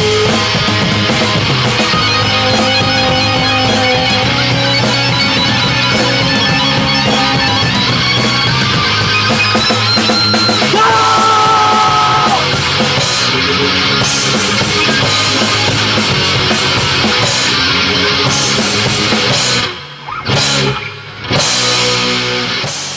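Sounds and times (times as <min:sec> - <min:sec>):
hard rock band playing: 0:00.0 - 0:22.9.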